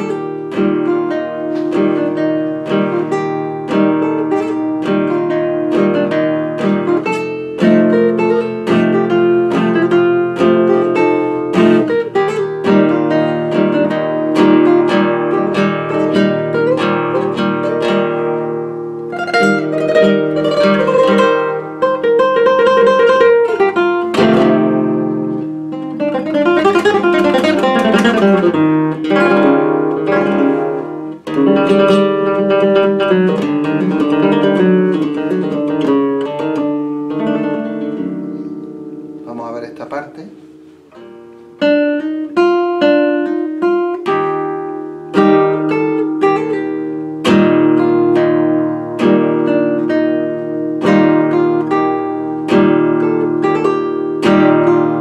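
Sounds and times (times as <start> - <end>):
plucked guitar runs: 0.0 - 55.0
strummed guitar chords: 0.0 - 55.0.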